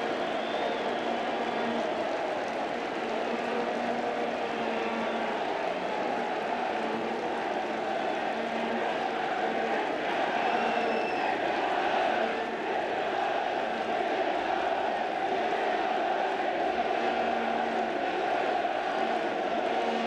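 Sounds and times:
stadium crowd chanting and singing: 0.0s - 20.0s.

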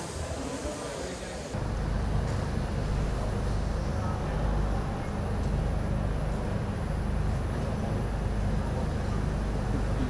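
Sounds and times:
low mechanical rumble and hum: 1.6s - 10.0s.

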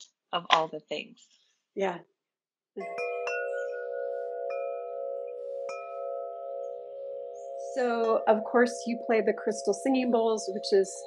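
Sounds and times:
wind chime ringing: 2.8s - 11.0s.

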